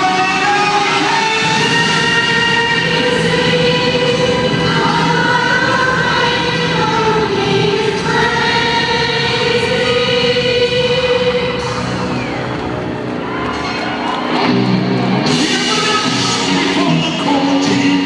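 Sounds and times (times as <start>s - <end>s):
choir-like sung notes: 0.0s - 12.6s
live concert music: 0.0s - 18.0s.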